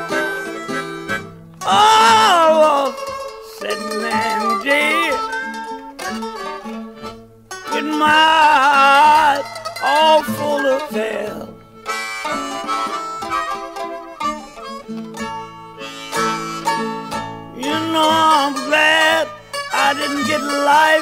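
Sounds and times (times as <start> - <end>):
acoustic guitar picking: 0.0 - 21.0
harmonica bent notes: 0.0 - 21.0
mandolin picking: 0.0 - 21.0.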